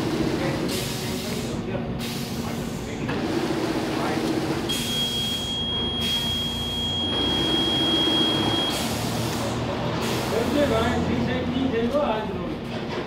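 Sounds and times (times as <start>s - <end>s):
machine buzzer high beep: 4.7s - 9.0s.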